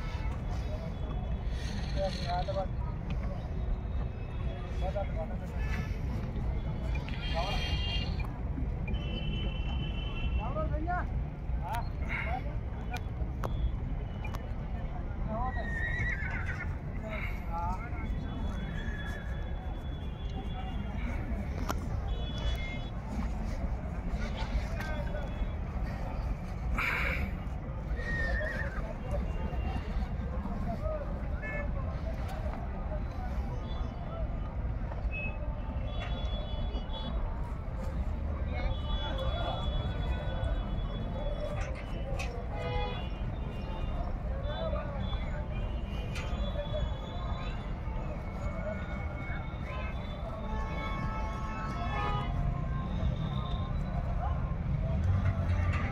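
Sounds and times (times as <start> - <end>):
faint voices: 0.0 - 55.9.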